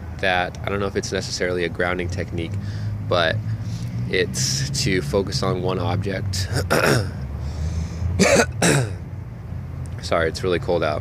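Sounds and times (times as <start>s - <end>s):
man coughing: 6.5s - 7.2s, 8.2s - 9.0s.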